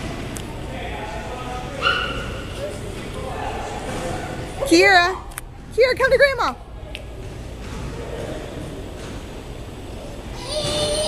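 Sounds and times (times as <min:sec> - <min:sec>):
toddler squealing: 0:10.4 - 0:11.0.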